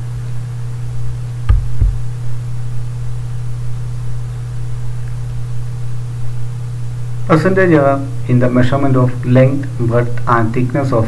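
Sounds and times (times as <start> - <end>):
low electrical hum: 0.0 - 11.0
short low thumps: 1.5 - 2.2.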